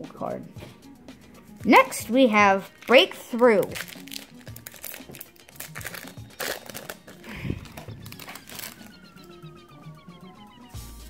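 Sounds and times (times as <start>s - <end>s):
foil wrapper crinkling: 2.7s - 9.0s.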